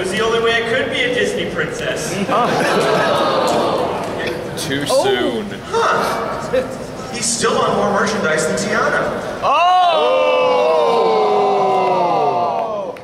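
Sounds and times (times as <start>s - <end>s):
voices talking: 2.0s - 8.1s.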